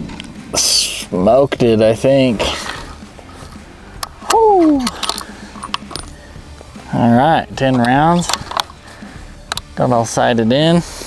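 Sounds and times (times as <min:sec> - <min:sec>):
rifle bolt metallic clicks: 0:04.0 - 0:06.2, 0:07.8 - 0:08.8, 0:09.5 - 0:09.7.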